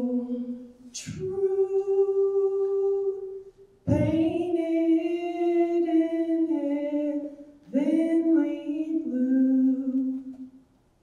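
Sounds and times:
woman singing unaccompanied: 0.0s - 10.6s.

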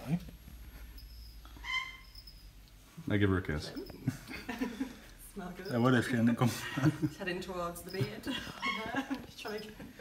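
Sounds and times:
low room hum: 0.0s - 10.0s
high-pitched bird call: 1.6s - 2.2s.

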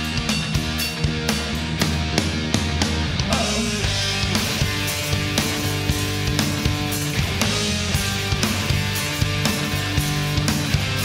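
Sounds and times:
bass guitar: 0.0s - 11.0s
guitar: 0.0s - 11.0s
steady drum beat: 0.0s - 11.0s.

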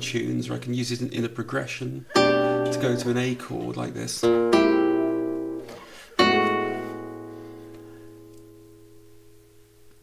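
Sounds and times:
classical guitar chords: 1.9s - 10.0s.

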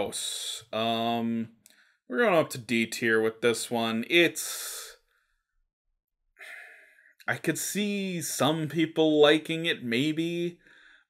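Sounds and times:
man's sigh-like in-breath: 6.4s - 7.1s, 10.6s - 11.0s.

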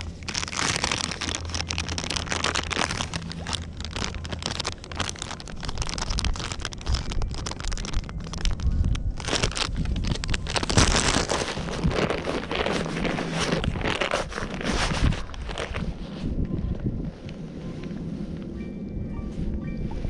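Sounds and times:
plastic bag crinkling: 0.0s - 16.1s
handling noise on microphone: 0.0s - 18.6s
wind on microphone: 0.0s - 20.0s.

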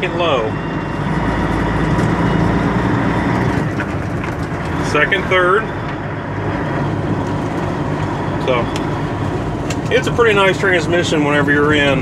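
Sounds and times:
diesel truck engine under load: 0.0s - 12.0s.

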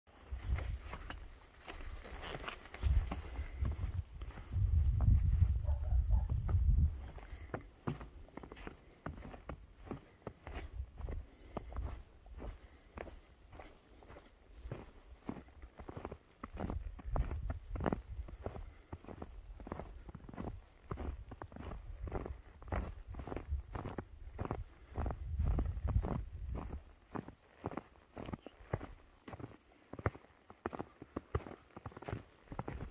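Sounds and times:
footsteps crunching through snow: 0.1s - 32.9s.

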